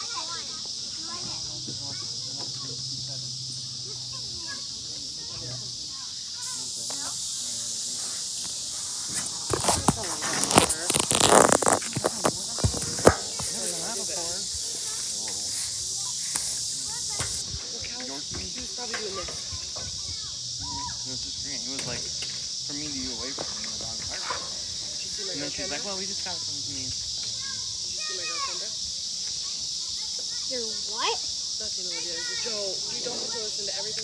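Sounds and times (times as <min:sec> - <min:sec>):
insects chirping: 0:00.0 - 0:34.0.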